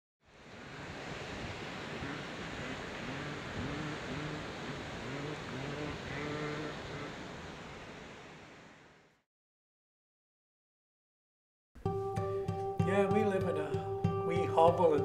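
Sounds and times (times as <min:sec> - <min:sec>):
short animal calls: 0:02.0 - 0:07.3.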